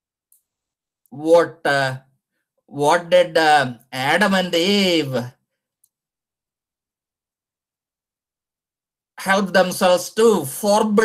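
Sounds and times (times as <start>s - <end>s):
man lecturing: 1.1s - 2.0s, 2.7s - 5.4s, 9.2s - 11.0s.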